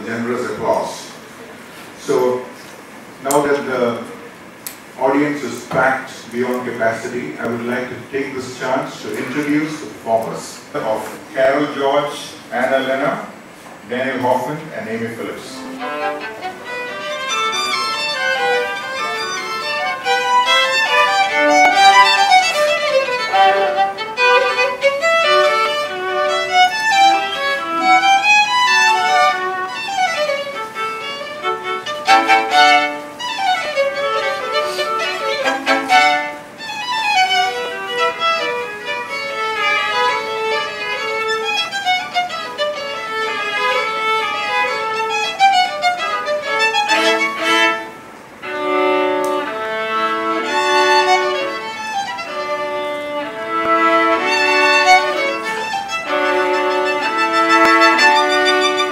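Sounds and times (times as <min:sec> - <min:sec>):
two violins playing a duet: 0:15.3 - 0:58.9.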